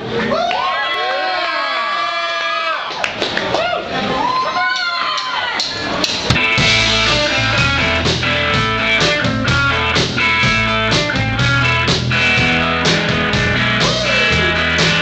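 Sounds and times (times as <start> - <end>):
rock band playing live: 6.2 - 15.0.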